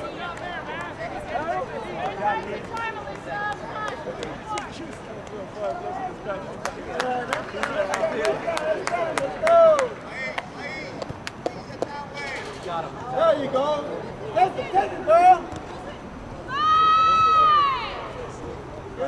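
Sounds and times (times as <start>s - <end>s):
spectators talking and calling: 0.0s - 19.0s
loud shout: 16.5s - 18.2s.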